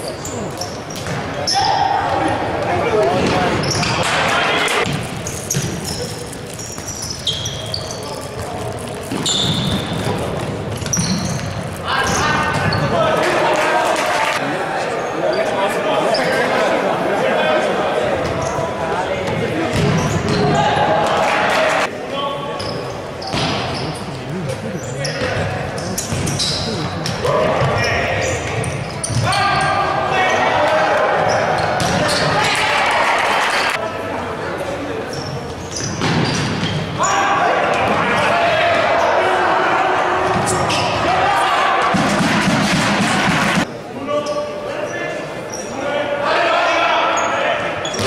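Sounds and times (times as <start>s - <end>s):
voices calling out: 10.9s - 33.8s.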